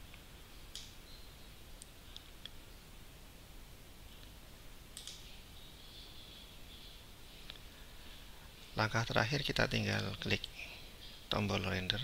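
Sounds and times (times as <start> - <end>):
faint steady hiss: 0.0 - 12.0
computer mouse clicks: 5.0 - 5.3.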